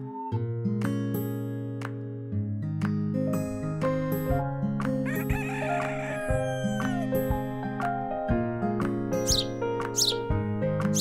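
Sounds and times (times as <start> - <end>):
plucked acoustic guitar music: 0.0 - 11.0
rooster crowing: 5.0 - 7.2.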